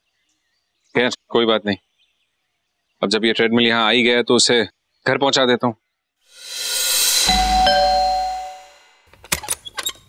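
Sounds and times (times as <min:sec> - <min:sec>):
two-note doorbell chime: 0:07.2 - 0:08.8.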